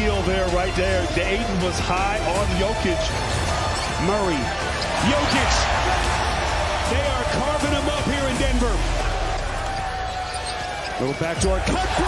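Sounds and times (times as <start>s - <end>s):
crowd noise: 0.0s - 12.0s
on-court sounds: 0.0s - 12.0s.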